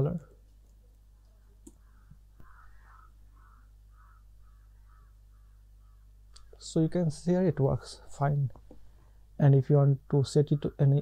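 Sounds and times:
steady low hum: 0.0 - 11.0
faint animal calls: 1.3 - 6.2.

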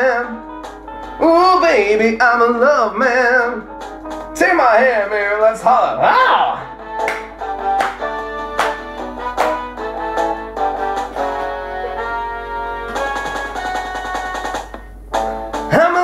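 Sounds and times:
horn section playing: 6.0 - 14.5
drum beat: 6.2 - 11.2, 12.9 - 15.8.

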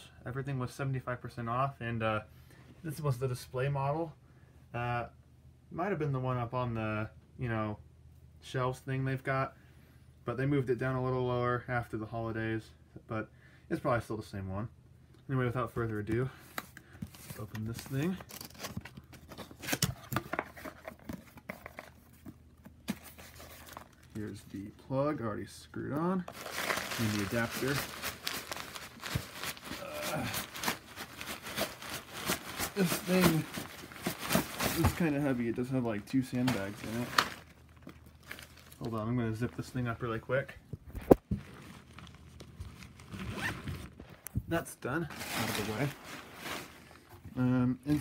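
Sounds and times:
packing rustling: 26.3 - 39.5, 45.1 - 47.2
cardboard box tearing: 26.4 - 35.1.

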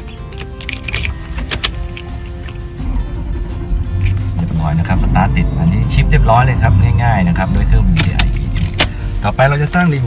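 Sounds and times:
key clicking in ignition lock: 0.0 - 2.6
background music: 0.0 - 10.0
engine cranking: 0.3 - 10.0.

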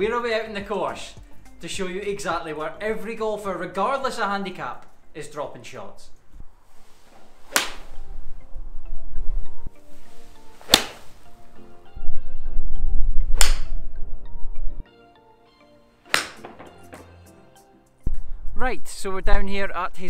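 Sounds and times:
golf iron striking ball: 7.2 - 8.2, 10.5 - 11.3, 13.4 - 13.8, 16.1 - 17.1.

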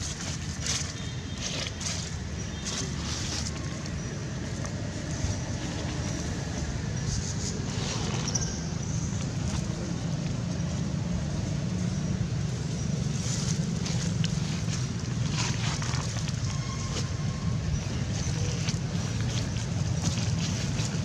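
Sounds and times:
dry leaves rustling: 0.0 - 21.0.

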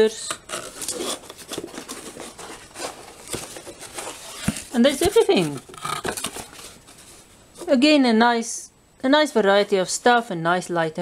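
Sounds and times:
paper and plastic sachets rustling: 0.5 - 7.8.

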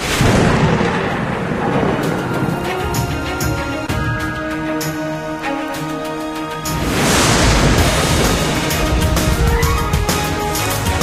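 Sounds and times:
thunder crash and rumble: 0.0 - 4.8, 6.7 - 11.0.

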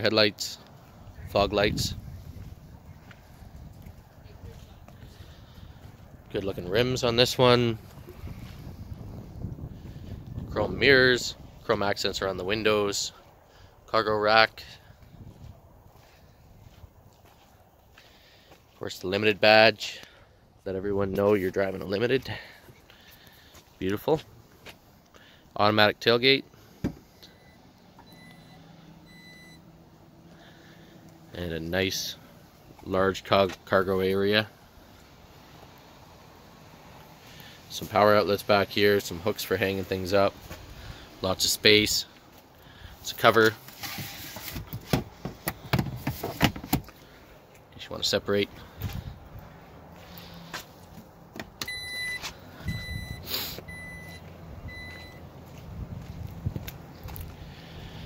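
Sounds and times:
short warning beeps: 27.2 - 29.7, 51.6 - 55.3.

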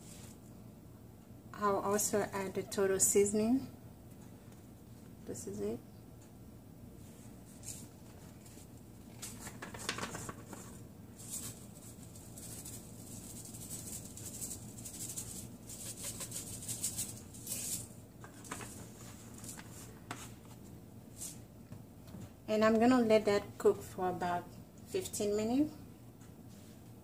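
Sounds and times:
plastic spice shaker rattling: 9.3 - 19.6.

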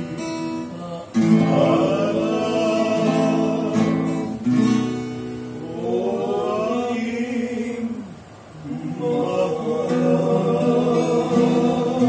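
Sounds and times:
male choir holding note: 0.8 - 4.5, 5.6 - 12.0.

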